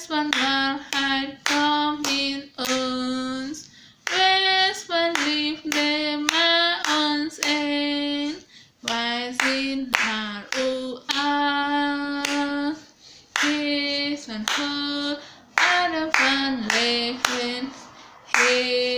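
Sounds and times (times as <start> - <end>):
woman singing a cappella: 0.0 - 18.9.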